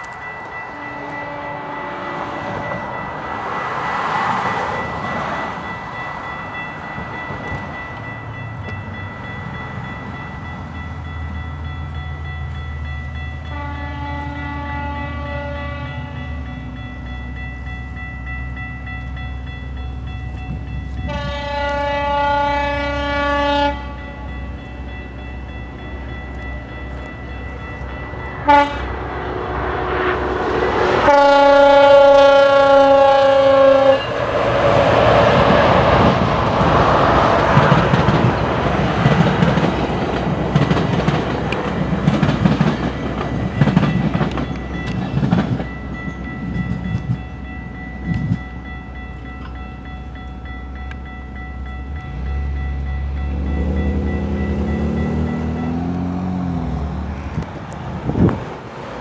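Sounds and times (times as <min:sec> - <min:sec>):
crossing signal bell ringing: 0:00.0 - 0:57.7
train rumble and wheel noise: 0:00.0 - 0:59.0
train horn blasts: 0:00.6 - 0:03.0, 0:13.4 - 0:16.6, 0:20.9 - 0:24.4, 0:28.4 - 0:37.6.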